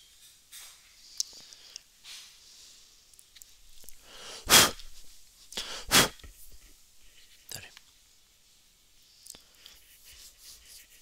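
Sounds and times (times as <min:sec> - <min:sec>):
short breath in: 0:04.0 - 0:04.8, 0:05.6 - 0:06.1
person sneezing: 0:04.2 - 0:04.9, 0:05.6 - 0:06.3.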